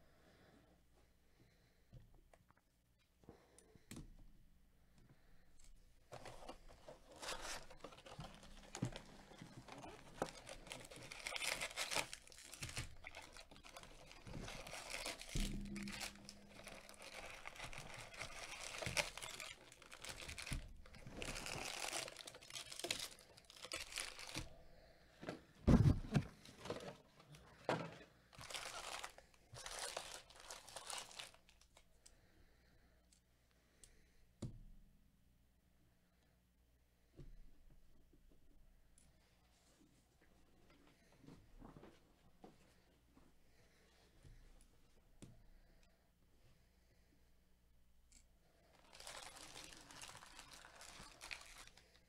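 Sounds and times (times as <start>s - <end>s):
cardboard and foil rustling: 6.1s - 24.6s, 25.7s - 31.8s, 48.7s - 52.0s.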